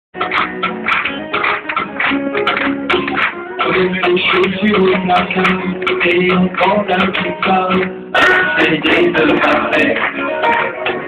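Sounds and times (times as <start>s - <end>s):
strummed acoustic guitar: 0.2s - 11.0s
person singing: 3.0s - 11.0s.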